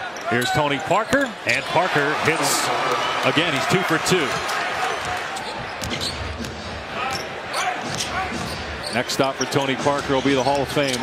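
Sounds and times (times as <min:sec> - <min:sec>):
sneakers squeaking on court: 0:04.3 - 0:11.0.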